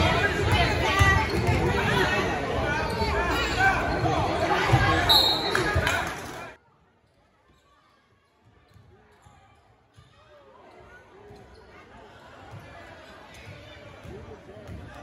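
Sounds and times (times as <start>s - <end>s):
crowd talking: 0.0s - 7.1s.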